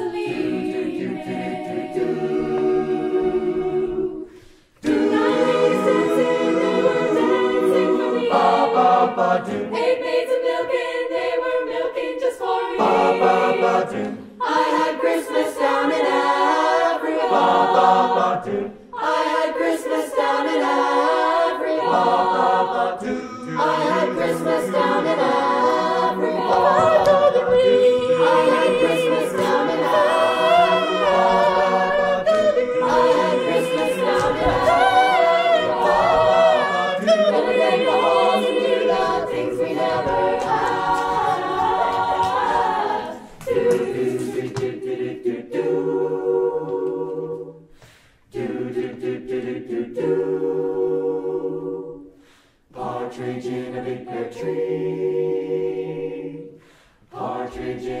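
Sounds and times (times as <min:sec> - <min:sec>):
choir singing a cappella: 0:00.0 - 0:58.0.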